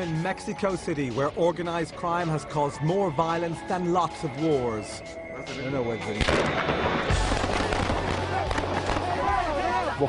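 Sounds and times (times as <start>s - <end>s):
rapid crackling pops: 6.2s - 9.3s.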